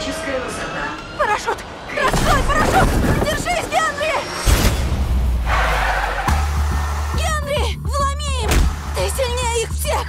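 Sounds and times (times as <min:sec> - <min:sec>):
dramatic trailer music: 0:00.0 - 0:10.0.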